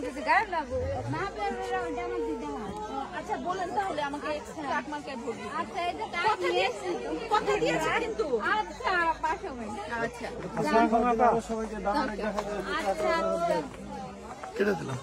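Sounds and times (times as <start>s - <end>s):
overlapping chatter of voices: 0.0s - 15.0s.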